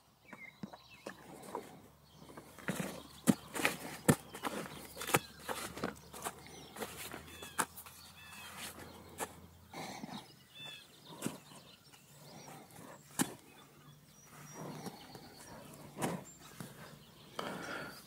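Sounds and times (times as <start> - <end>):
small birds chirping: 0.0 - 18.0
horse hooves stepping in sand: 0.5 - 9.5, 10.2 - 17.7.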